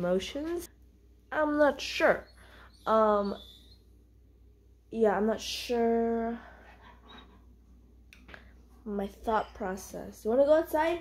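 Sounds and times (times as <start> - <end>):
woman's voice: 0.0 - 0.7, 1.3 - 3.6, 4.9 - 6.7, 8.8 - 11.0.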